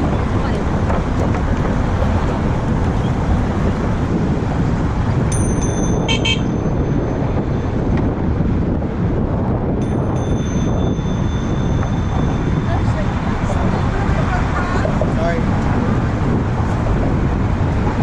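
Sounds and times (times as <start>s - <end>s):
bicycle rumbling over wooden bridge: 0.0s - 5.3s
pedestrians talking: 0.0s - 18.0s
wind on microphone: 0.0s - 18.0s
thin high ringing tone: 5.3s - 7.2s, 9.8s - 13.6s.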